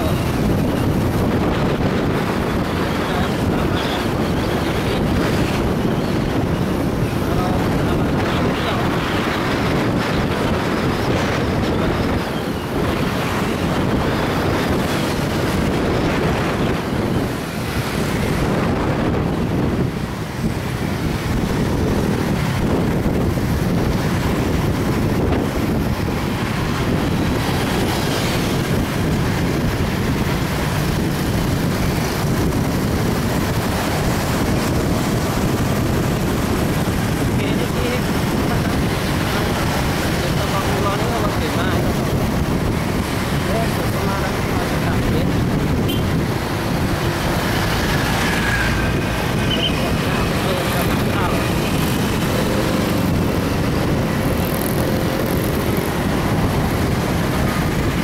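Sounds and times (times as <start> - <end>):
road traffic engine and tyre noise: 0.0 - 58.0
wind noise on microphone: 0.0 - 58.0.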